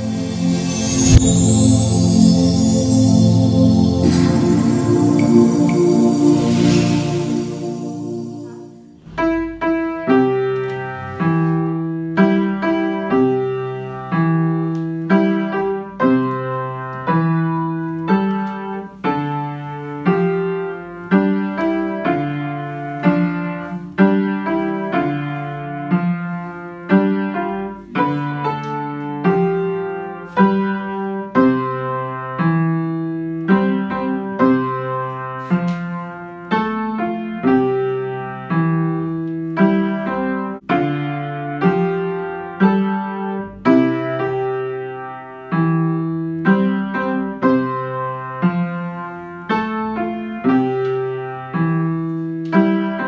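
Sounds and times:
upright piano lullaby: 0.0s - 53.0s.

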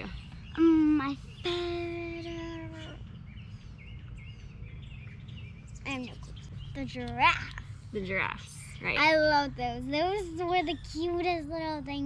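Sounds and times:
low outdoor rumble: 0.0s - 12.0s
small birds chirping: 0.0s - 12.0s.

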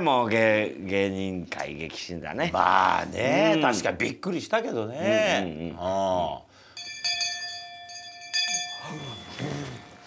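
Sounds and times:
bell ringing: 6.7s - 10.0s.

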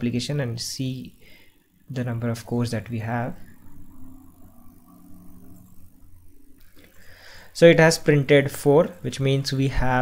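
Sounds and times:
faint held tones: 0.0s - 10.0s
low electrical hum: 0.0s - 10.0s.

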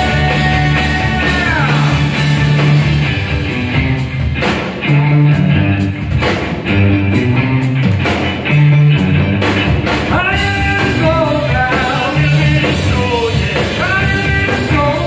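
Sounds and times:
person singing: 0.0s - 2.4s, 10.1s - 15.0s
bass guitar: 0.0s - 15.0s
drum kit: 0.0s - 15.0s
electric guitars: 0.0s - 15.0s.

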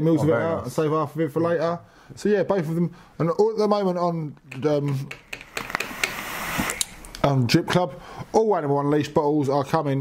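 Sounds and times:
vape hissing on inhale: 5.7s - 7.0s.

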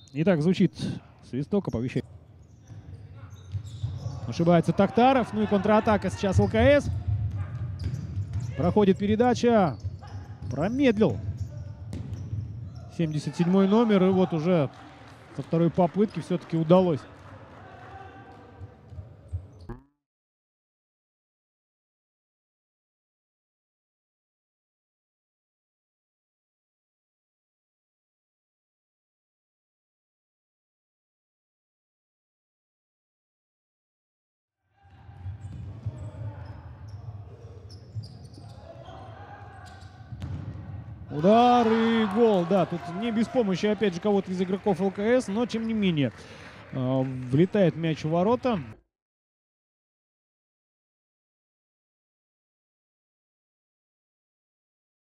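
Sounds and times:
sports hall noise: 0.0s - 19.8s, 34.7s - 48.8s
sneaker squeaks: 2.0s - 4.5s, 6.3s - 8.8s, 9.7s - 13.2s, 18.6s - 19.8s, 35.0s - 40.4s
ball kicked on wooden court: 9.8s - 12.4s, 40.1s - 40.7s.

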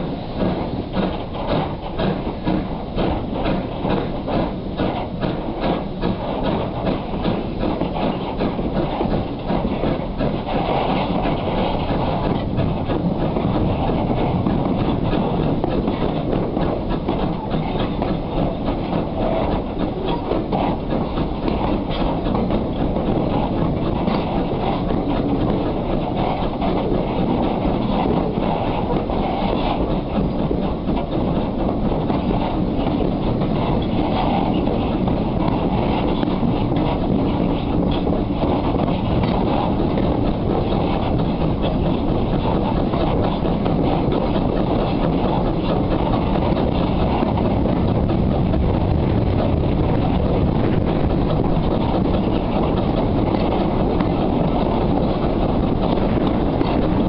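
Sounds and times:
steam train running rumble: 0.0s - 57.0s
wheels clattering on rails: 0.0s - 57.0s.

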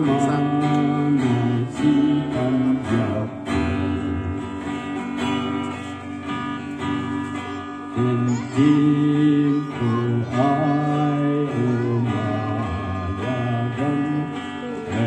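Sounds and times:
man singing long notes: 0.0s - 4.9s, 7.5s - 15.0s
acoustic guitar strumming: 0.0s - 15.0s.

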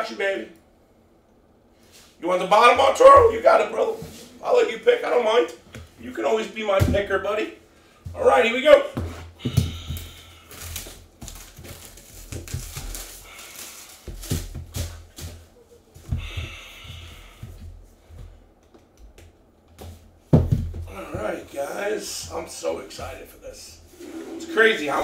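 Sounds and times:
plastic wrap crinkling and tearing: 10.4s - 15.4s.

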